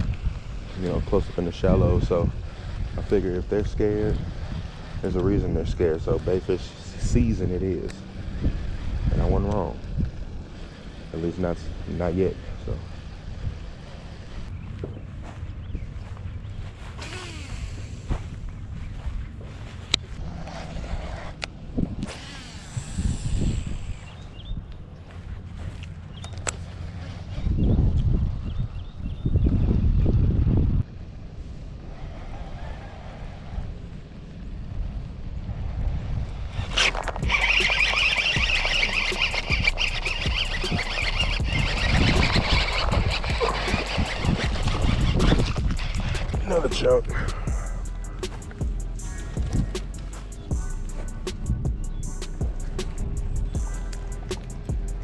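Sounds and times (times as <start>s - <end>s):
low rumbles in gusts: 0.0s - 55.0s
wind on microphone: 0.0s - 55.0s
microphone handling noise: 36.6s - 54.8s
background music with beat: 37.2s - 55.0s.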